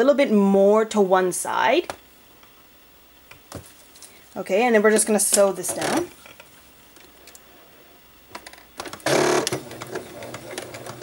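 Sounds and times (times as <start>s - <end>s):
sewing machine stitching: 9.0s - 11.0s.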